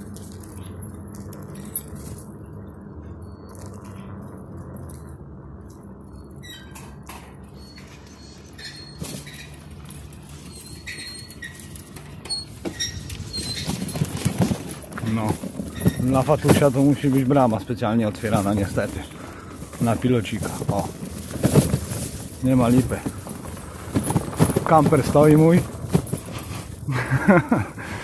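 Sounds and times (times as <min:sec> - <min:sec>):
bicycle rolling over paving: 0:00.0 - 0:28.0
bike rattles and clicks: 0:00.0 - 0:28.0
short high squeaks: 0:06.3 - 0:14.3.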